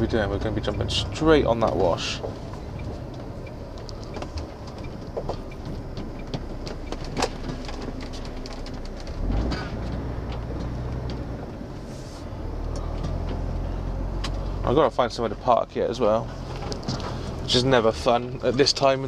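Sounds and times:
diesel engine running: 0.0 - 19.0
small clicks and rattles: 1.6 - 11.3.

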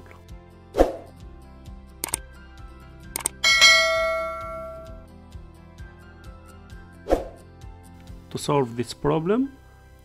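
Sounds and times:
quick double click: 2.0 - 2.2, 3.1 - 3.4
notification bell ding: 3.4 - 5.0.

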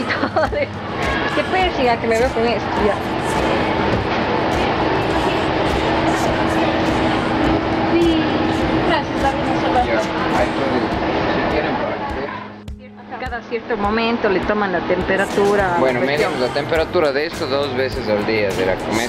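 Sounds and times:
steady low hum: 0.0 - 19.0
indistinct voices: 0.8 - 19.0.

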